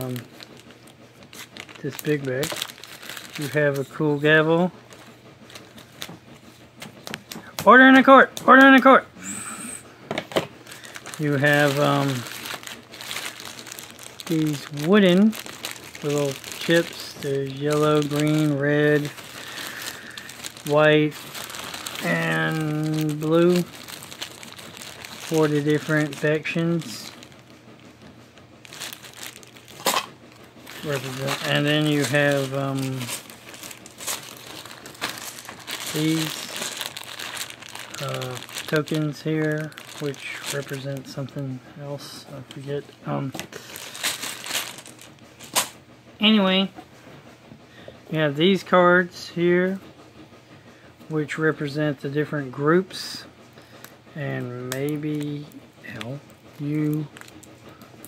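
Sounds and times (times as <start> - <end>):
plastic bag rustling: 0.0 - 6.3, 10.6 - 45.8, 54.7 - 58.0.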